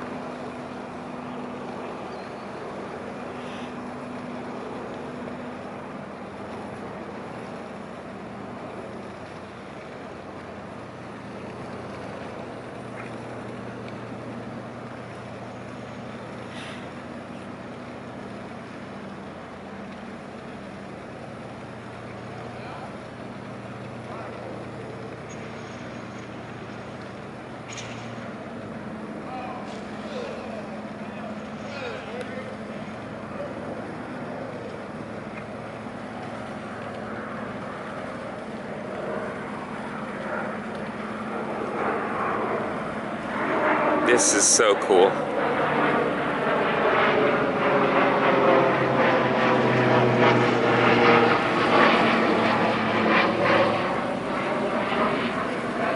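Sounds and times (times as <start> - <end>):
ship diesel engines humming: 0.0 - 52.9.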